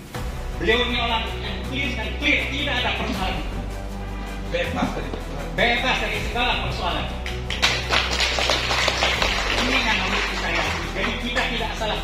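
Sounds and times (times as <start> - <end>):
background music: 0.0 - 12.0
people clapping: 7.0 - 12.0.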